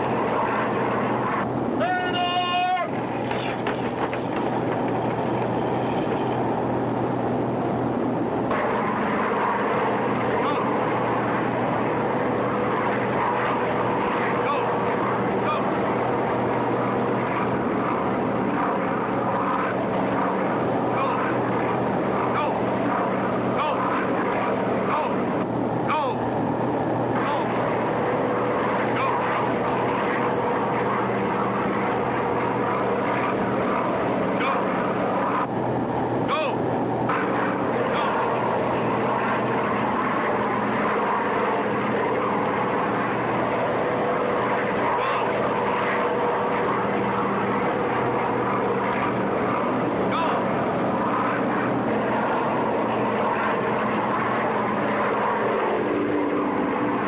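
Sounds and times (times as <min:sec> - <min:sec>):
propeller aircraft engines droning: 0:00.0 - 0:57.0.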